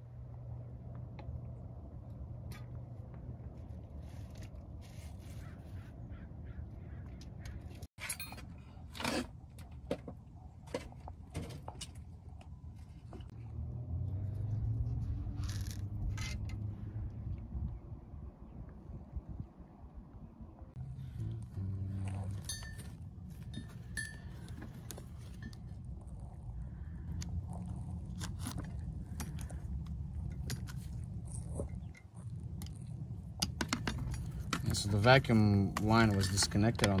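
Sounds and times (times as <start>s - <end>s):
low steady rumble: 0.0s - 37.0s.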